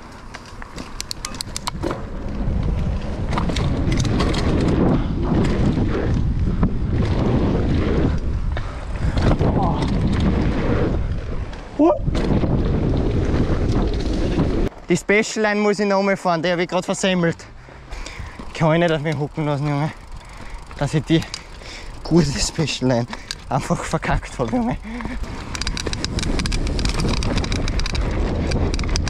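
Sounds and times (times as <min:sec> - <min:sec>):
bike clicks and knocks: 0:00.0 - 0:14.9, 0:16.8 - 0:29.0
bike tyres rolling on dirt: 0:00.0 - 0:29.0
wind buffeting microphone: 0:01.2 - 0:14.7, 0:17.9 - 0:29.0
rider exclamation: 0:09.3 - 0:10.0, 0:11.8 - 0:12.1, 0:18.5 - 0:25.3.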